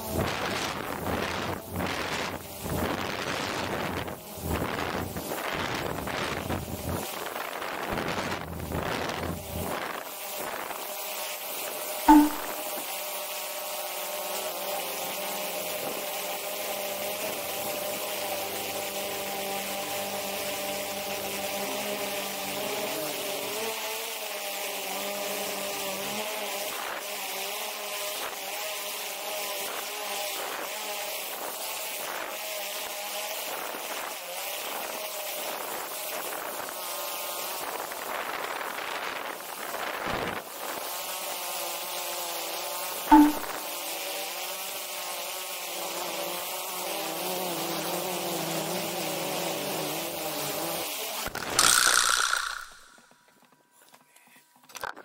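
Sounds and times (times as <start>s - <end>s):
sharp click: 12.1s - 12.7s, 43.1s - 43.6s, 51.3s - 53.1s
drone propellers buzzing: 43.1s - 43.7s, 51.2s - 53.1s.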